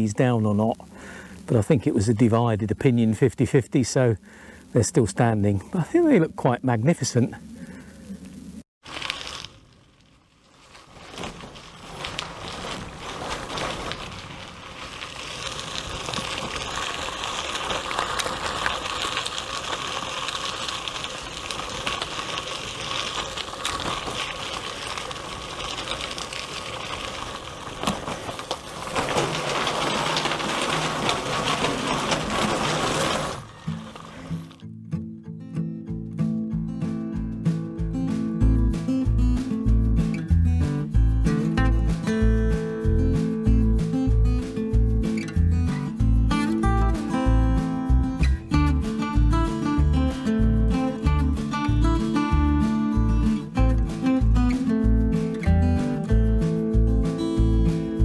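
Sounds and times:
bicycle tyres and wind rushing: 0:07.5 - 0:34.6
strummed acoustic guitar music: 0:29.1 - 0:58.0.

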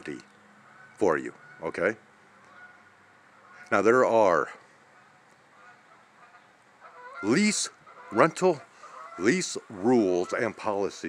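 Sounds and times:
faint outdoor background hiss: 0:00.0 - 0:11.0.

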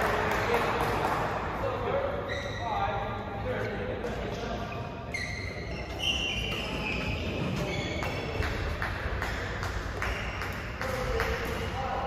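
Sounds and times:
voices in a hall: 0:00.0 - 0:12.0
shoes squeaking on court: 0:02.2 - 0:02.8, 0:04.6 - 0:08.8.

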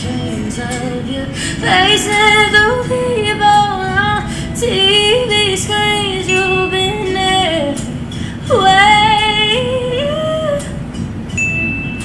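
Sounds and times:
woman singing slow melody: 0:00.0 - 0:11.0.

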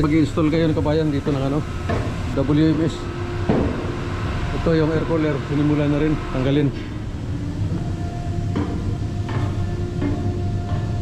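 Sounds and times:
ventilation blower hum: 0:00.0 - 0:11.0
high steady tone: 0:00.7 - 0:11.0.

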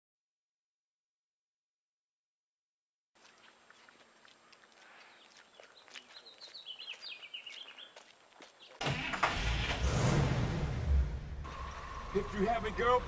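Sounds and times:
bird chirps: 0:03.2 - 0:08.8.

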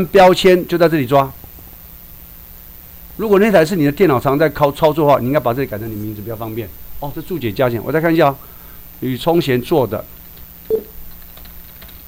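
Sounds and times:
low background hum: 0:00.0 - 0:12.0
computer keyboard keystrokes: 0:11.1 - 0:12.0.

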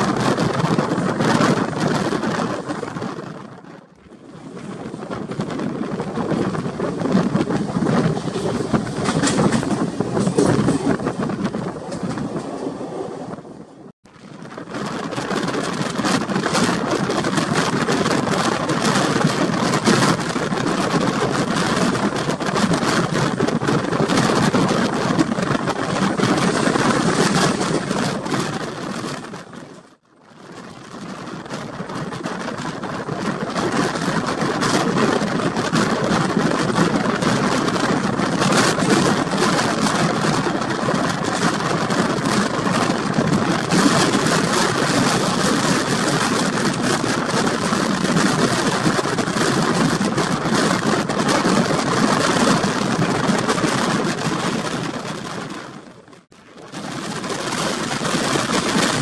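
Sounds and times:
rushing wind: 0:00.0 - 0:59.0
train wheels rumbling on rails: 0:00.0 - 0:59.0.

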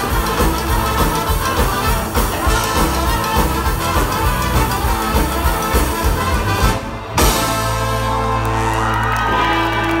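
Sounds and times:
brass band holding a chord: 0:00.0 - 0:08.8
audience cheering and whooping: 0:07.2 - 0:10.0.

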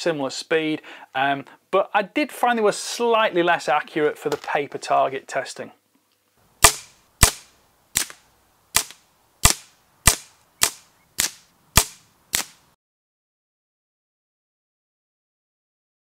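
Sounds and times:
sharp cracks of gunshots: 0:06.6 - 0:08.2, 0:08.8 - 0:12.6
air rifle shots: 0:06.6 - 0:12.6.

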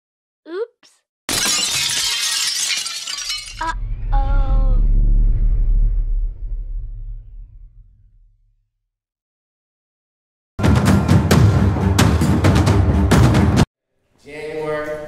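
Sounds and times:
glass shattering: 0:01.3 - 0:03.8
deep ringing boom: 0:03.7 - 0:08.6.

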